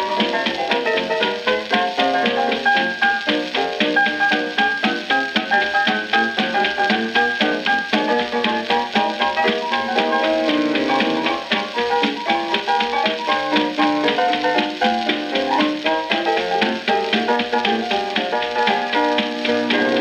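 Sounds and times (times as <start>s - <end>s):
old jazz recording: 0.0s - 20.0s.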